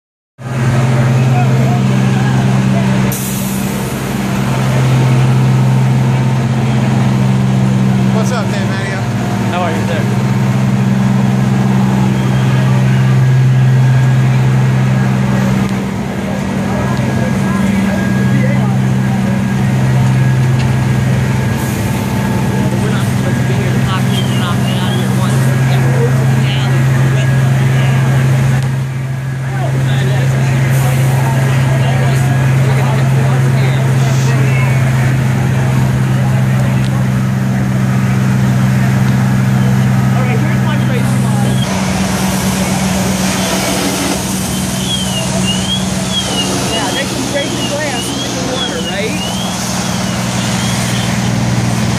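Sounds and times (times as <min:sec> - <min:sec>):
diesel engines droning: 0:00.4 - 0:51.9
people talking: 0:00.5 - 0:51.9.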